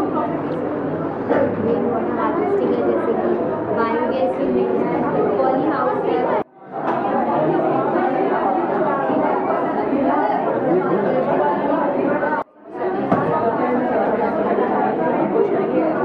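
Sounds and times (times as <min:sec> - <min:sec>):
overlapping chatter in a hall: 0:00.0 - 0:16.0.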